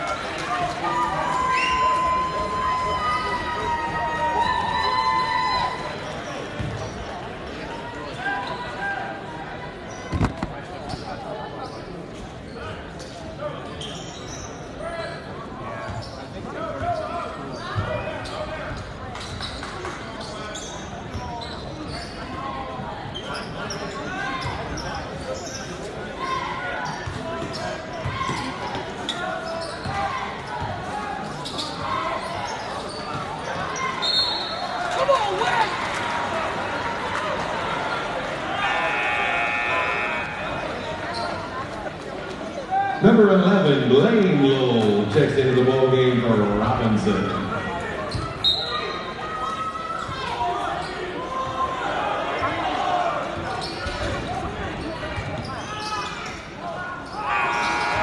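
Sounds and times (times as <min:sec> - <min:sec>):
crowd chatter: 0:00.0 - 0:58.0
basketball bouncing on court: 0:06.6 - 0:06.9.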